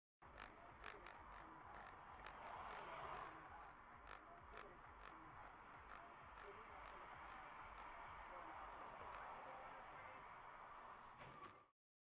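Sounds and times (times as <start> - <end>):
car road rumble: 0.2 - 11.2.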